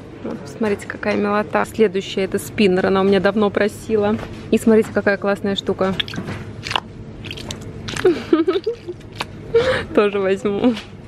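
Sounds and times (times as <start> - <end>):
stress ball squelching: 5.8 - 9.4.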